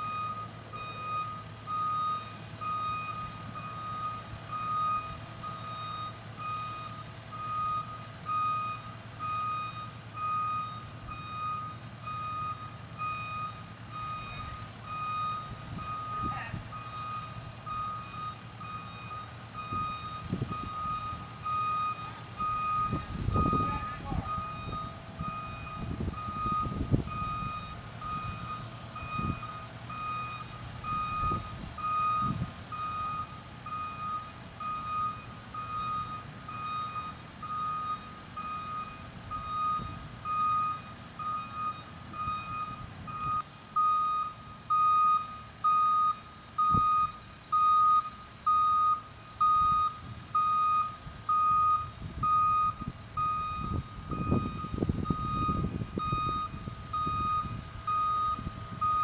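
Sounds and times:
back-up alarm beeping: 0:00.0 - 0:59.0
engine humming: 0:00.0 - 0:59.0.

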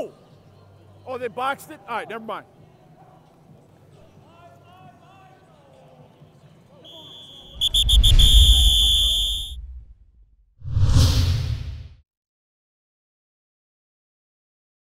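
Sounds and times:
whistle blasts: 0:06.8 - 0:09.9
short rushing whoosh: 0:07.6 - 0:12.0
heavy low rumble: 0:09.4 - 0:11.9.

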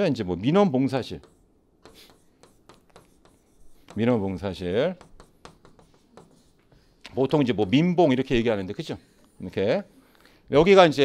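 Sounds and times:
pen scratching while writing: 0:01.2 - 0:07.1.

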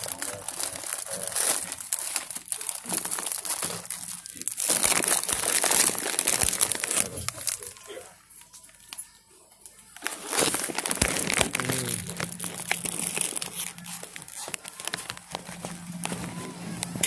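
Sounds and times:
rustling and crinkling handling: 0:00.0 - 0:09.0, 0:09.6 - 0:17.0
low steady hum: 0:10.6 - 0:17.0.

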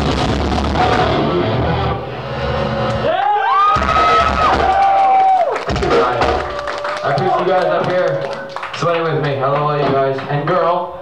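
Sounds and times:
heavy metal song: 0:00.0 - 0:02.9
crowd cheering: 0:02.1 - 0:10.5.

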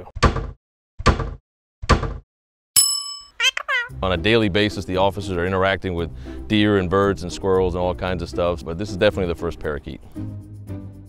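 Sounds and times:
bright bell ding: 0:02.8 - 0:03.5
bird-like chirps: 0:03.4 - 0:03.9.

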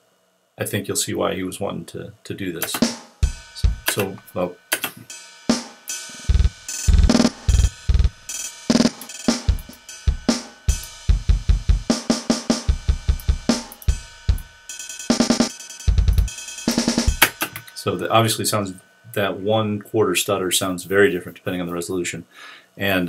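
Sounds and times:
stuttering drum loop: 0:02.6 - 0:18.4.

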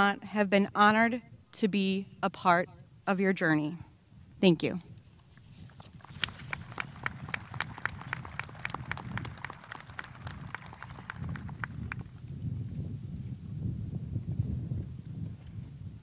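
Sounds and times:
low wind rumble on microphone: 0:00.0 - 0:16.0
people clapping: 0:05.9 - 0:12.2.

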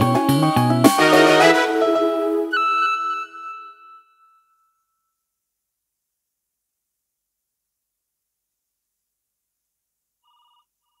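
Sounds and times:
faint warbling electronic ring: 0:02.5 - 0:05.2.

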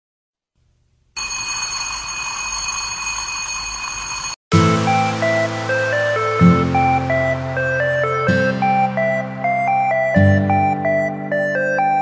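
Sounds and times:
alarm bell ringing: 0:01.2 - 0:04.4.

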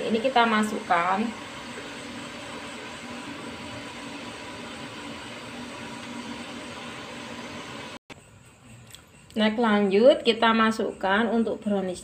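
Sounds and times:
boiling water hissing: 0:00.0 - 0:11.2.

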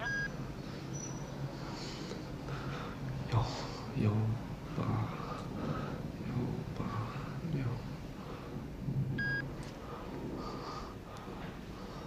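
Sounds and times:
phone key beep: 0:00.0 - 0:00.3.

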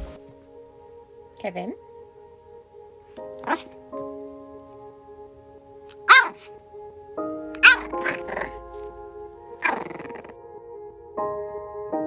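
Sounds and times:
soft background music: 0:00.0 - 0:12.0
puppy barking: 0:03.4 - 0:03.7, 0:05.9 - 0:06.6, 0:07.5 - 0:08.7, 0:09.6 - 0:10.3.

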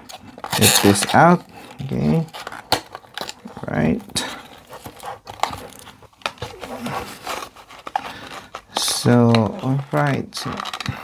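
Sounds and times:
cardboard and plastic rustling: 0:00.0 - 0:11.0.

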